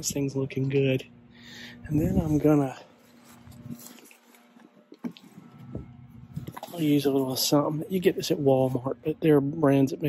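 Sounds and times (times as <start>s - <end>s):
low steady hum: 0.0s - 10.0s
handling and rustling: 2.1s - 7.6s.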